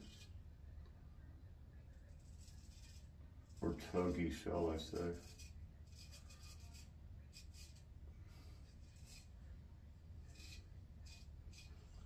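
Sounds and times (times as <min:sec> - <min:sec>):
razor scraping beard stubble: 0:02.0 - 0:07.9, 0:08.5 - 0:09.4, 0:10.2 - 0:12.0.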